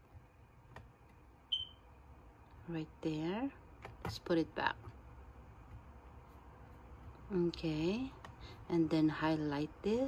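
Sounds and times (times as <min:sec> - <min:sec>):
short high-pitched electronic beep: 0:01.5 - 0:01.8.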